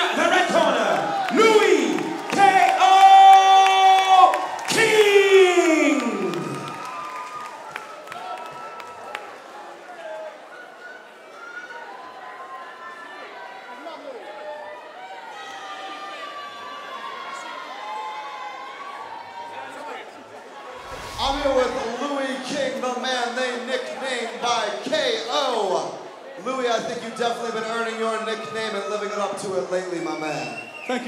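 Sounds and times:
crowd cheering and shouting: 0.0s - 22.9s.

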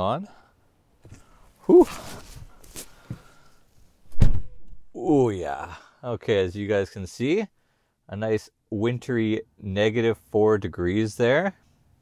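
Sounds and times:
rustling: 1.0s - 4.2s.

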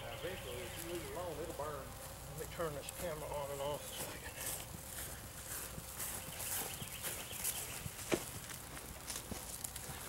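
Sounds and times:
footsteps on grass: 0.0s - 10.0s
outdoor background noise: 0.0s - 10.0s.

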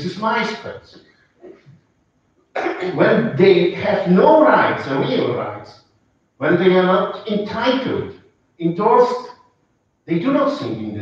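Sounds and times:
man speaking: 0.0s - 1.0s, 2.8s - 5.7s, 6.4s - 9.3s, 10.1s - 11.0s.

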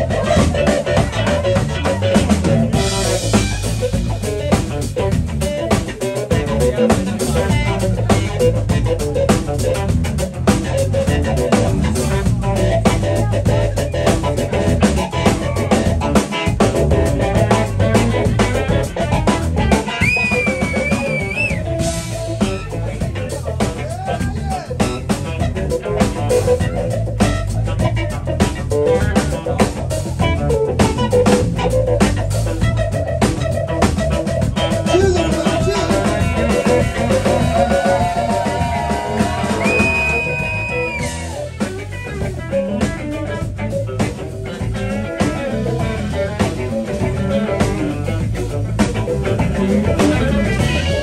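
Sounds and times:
bending lead guitar notes: 0.0s - 51.0s
blues band playing: 0.0s - 51.0s.

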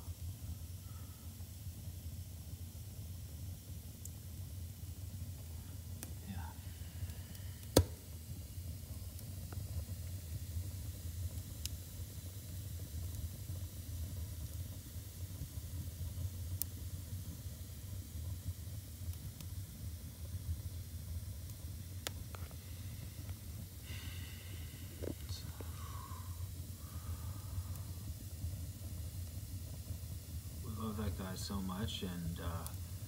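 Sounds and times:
fire low rumble: 0.0s - 33.0s
wood fire crackling and popping: 0.0s - 33.0s.

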